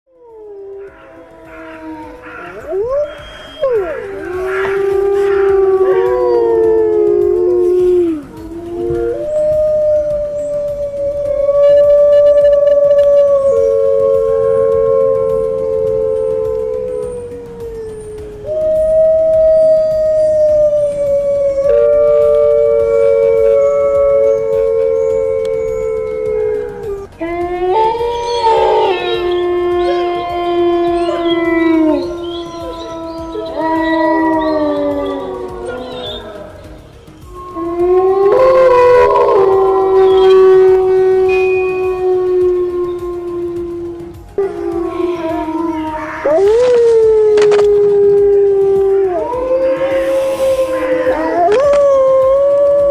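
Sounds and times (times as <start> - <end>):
wolves howling: 0.1 - 52.9.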